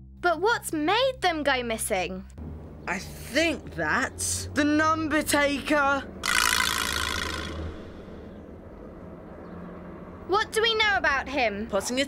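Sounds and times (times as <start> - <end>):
quiet street background noise: 1.7 - 12.0.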